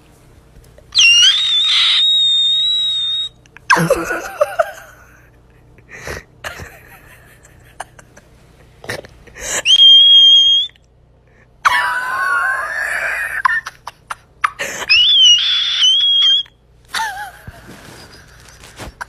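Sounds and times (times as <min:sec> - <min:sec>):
person shrieking: 0:01.0 - 0:04.0, 0:14.8 - 0:16.4.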